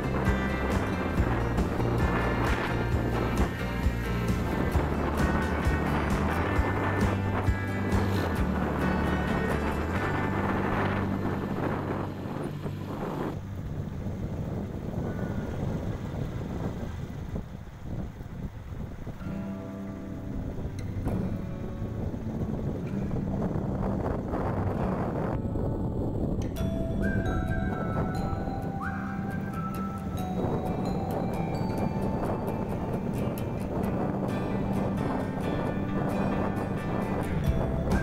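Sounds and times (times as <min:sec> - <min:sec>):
music playing: 0:00.0 - 0:13.5, 0:19.5 - 0:38.0
motorbike engine running: 0:00.0 - 0:18.8, 0:30.0 - 0:38.0
wind buffeting microphone: 0:00.0 - 0:38.0.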